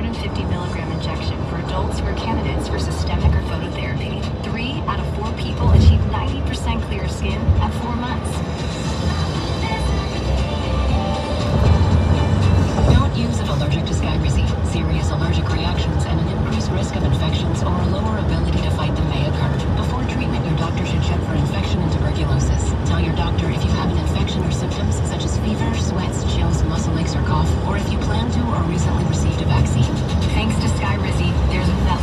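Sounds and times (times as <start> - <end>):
background music on radio: 0.0 - 32.0
car road and engine rumble: 0.0 - 32.0.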